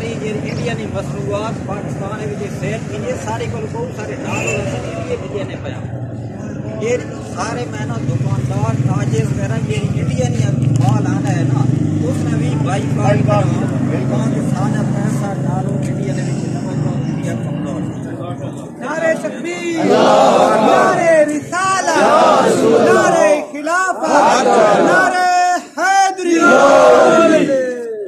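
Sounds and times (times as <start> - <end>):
men talking: 0.0 - 28.0.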